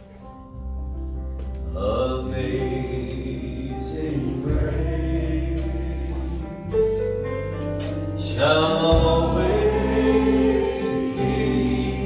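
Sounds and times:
electric keyboard chords: 0.0 - 12.0
people singing: 1.8 - 7.0, 8.2 - 12.0.

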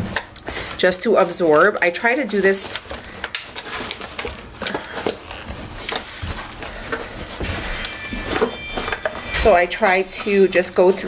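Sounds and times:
foil pan crinkling: 0.0 - 11.0
paper towels rustling: 0.0 - 11.0.

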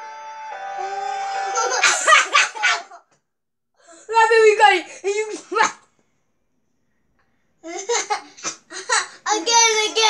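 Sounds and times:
child laughing: 1.5 - 3.1.

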